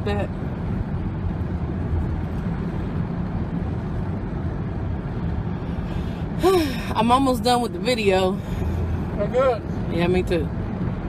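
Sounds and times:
truck road and engine rumble: 0:00.0 - 0:11.0.

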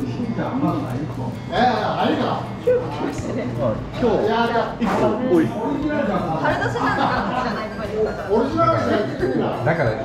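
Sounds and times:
restaurant background hum: 0:00.0 - 0:10.0.

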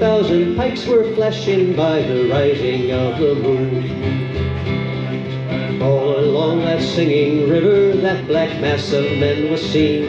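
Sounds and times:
acoustic guitar strumming: 0:00.0 - 0:10.0
man singing a folk ballad: 0:00.0 - 0:10.0.

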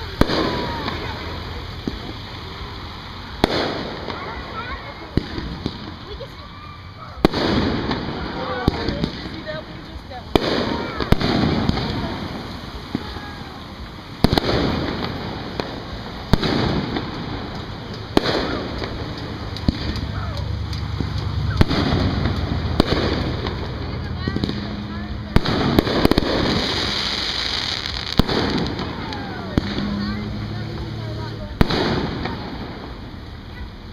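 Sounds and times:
fireworks bursting: 0:00.0 - 0:33.9.

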